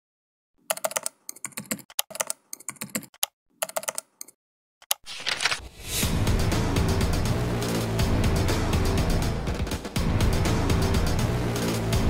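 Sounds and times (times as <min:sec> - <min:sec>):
computer keyboard typing: 0:00.6 - 0:05.6.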